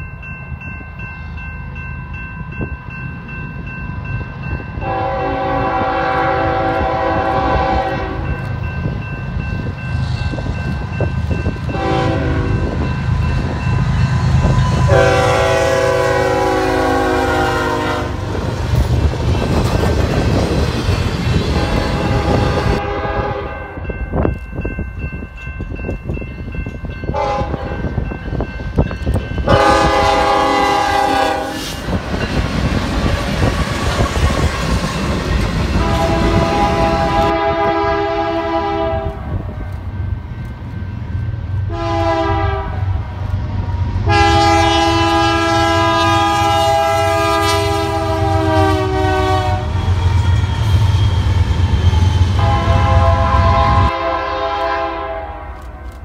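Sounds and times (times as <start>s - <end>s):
locomotive rumble passing: 0.0s - 55.4s
locomotive air horn blasts: 4.8s - 8.4s, 11.7s - 12.8s, 14.7s - 18.4s, 21.4s - 23.8s, 27.1s - 27.8s, 29.4s - 31.8s, 35.7s - 39.4s, 41.7s - 43.0s, 44.0s - 49.9s, 52.3s - 55.7s.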